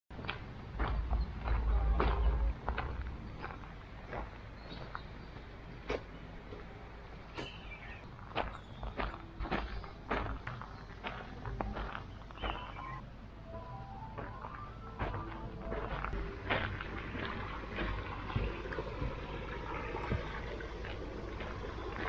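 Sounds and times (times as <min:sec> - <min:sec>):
low rumble: 0:00.2 - 0:07.3, 0:08.0 - 0:22.0
footsteps on dry leaves: 0:14.5 - 0:22.0.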